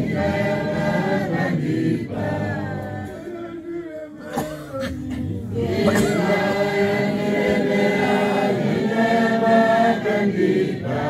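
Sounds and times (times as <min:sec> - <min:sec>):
congregation singing a hymn: 0:00.0 - 0:04.4, 0:05.1 - 0:11.0.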